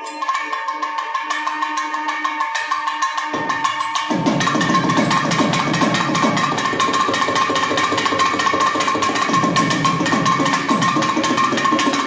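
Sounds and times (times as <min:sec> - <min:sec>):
fast drumming: 0:00.0 - 0:12.0.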